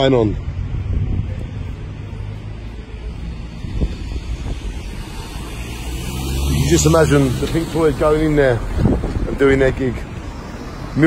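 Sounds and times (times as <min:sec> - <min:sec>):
road traffic hum: 0:00.0 - 0:11.0
wind on microphone: 0:00.5 - 0:02.0, 0:03.3 - 0:05.8, 0:08.6 - 0:09.7.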